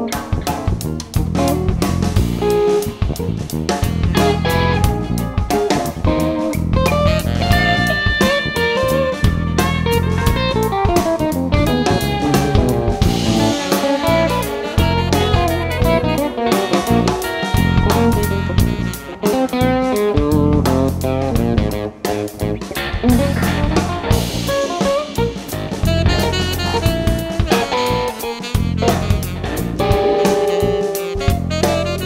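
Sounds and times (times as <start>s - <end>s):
bass guitar: 0.0s - 32.0s
drum kit: 0.0s - 32.0s
electric guitar: 0.0s - 32.0s.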